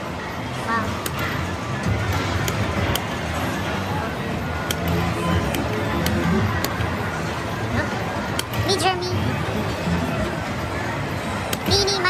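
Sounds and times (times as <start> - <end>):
casino background chatter: 0.0 - 12.0.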